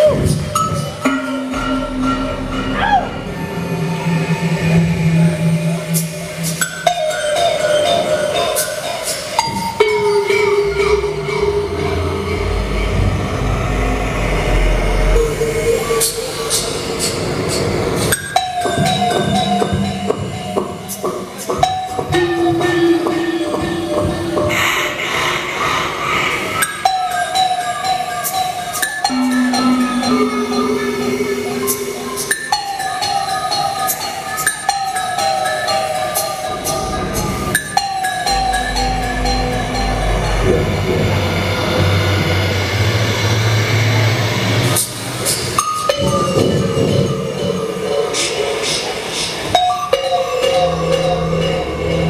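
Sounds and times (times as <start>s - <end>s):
experimental electronic music: 0.0s - 52.0s
deep rumble: 1.5s - 6.6s, 10.7s - 18.0s, 38.3s - 44.8s.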